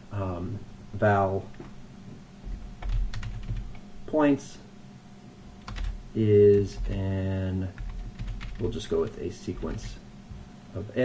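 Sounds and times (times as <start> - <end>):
typing on computer keyboard: 2.8 - 3.7, 5.6 - 7.0, 7.8 - 8.7.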